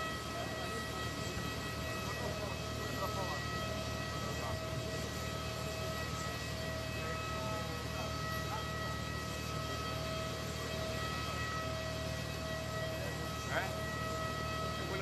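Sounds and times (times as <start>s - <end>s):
jet aircraft engine whine: 0.0s - 15.0s.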